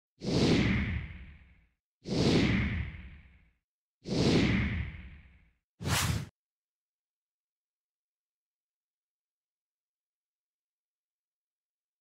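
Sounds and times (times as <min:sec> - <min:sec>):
sharp swoosh: 0:05.8 - 0:06.3.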